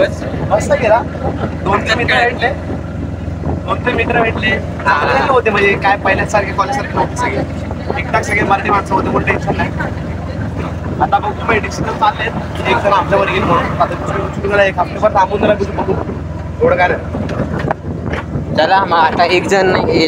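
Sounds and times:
people talking: 0.0 - 2.8, 3.5 - 17.5, 18.5 - 20.0
bus engine drone: 0.0 - 20.0
road noise: 0.0 - 20.0.

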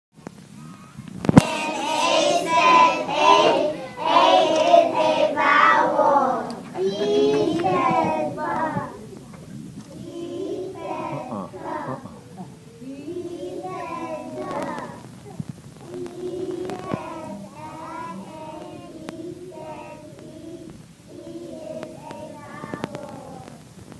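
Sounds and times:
children singing together: 1.4 - 23.7.

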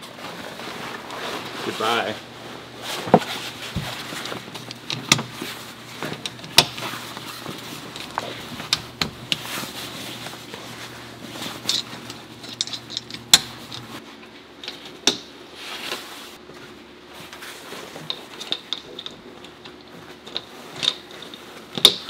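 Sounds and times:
tent fabric rustling: 0.0 - 4.6.

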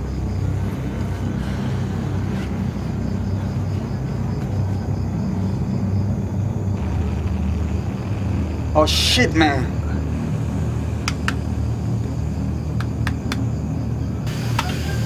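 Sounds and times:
low rumble: 0.0 - 14.7.

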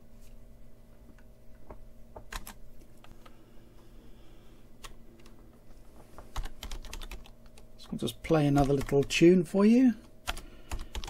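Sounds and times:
faint steady hum: 0.0 - 11.0
keyboard typing: 2.3 - 2.6, 6.3 - 7.6, 8.5 - 9.1, 10.2 - 11.0.

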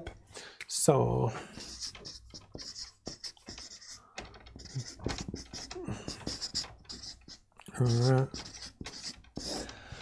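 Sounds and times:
marker pen squeaking on paper: 1.6 - 9.7.

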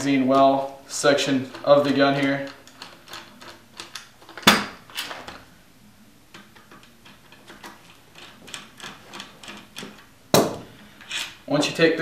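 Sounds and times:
screwdriver ticking and scraping screws: 1.3 - 4.6, 6.3 - 10.1.

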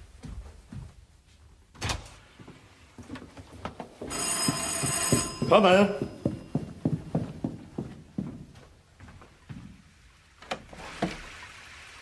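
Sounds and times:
electric doorbell ringing: 4.1 - 6.2.

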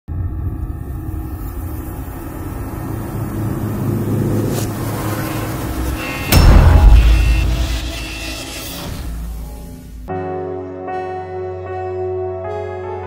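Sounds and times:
low cinematic rumble: 0.1 - 10.1.

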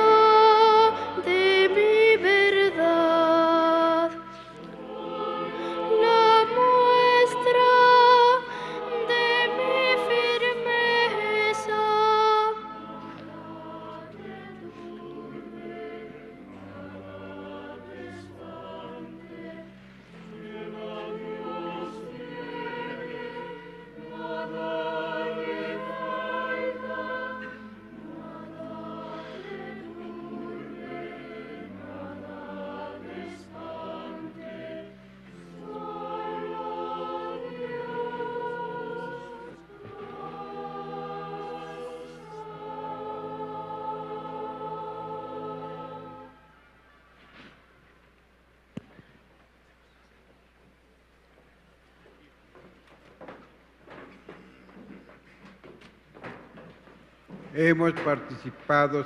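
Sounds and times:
choir singing a slow hymn: 0.0 - 47.7.

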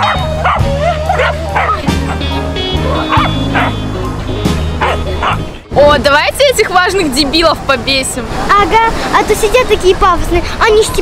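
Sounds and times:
dogs barking in high yips: 0.0 - 3.8, 4.8 - 5.4
background music with bass line: 0.0 - 6.0.

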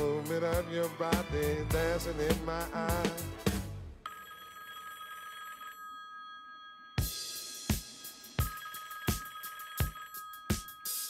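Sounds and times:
electronic telephone ringing tone: 4.0 - 7.3, 8.3 - 11.0.

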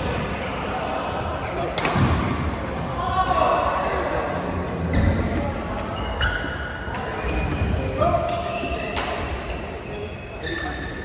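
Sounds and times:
murmur of players: 0.0 - 11.0.

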